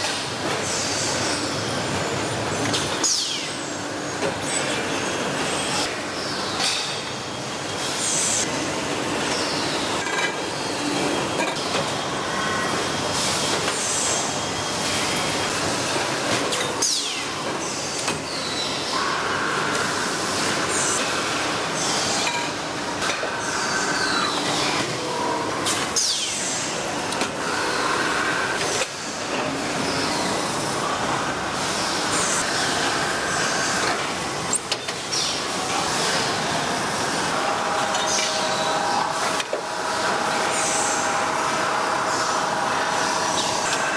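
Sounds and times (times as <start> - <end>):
factory machinery clatter and hiss: 0.0 - 43.9.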